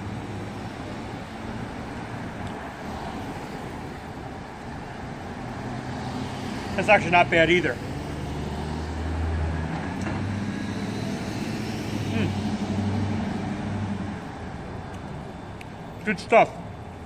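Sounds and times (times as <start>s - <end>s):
cars passing: 0.0s - 17.0s.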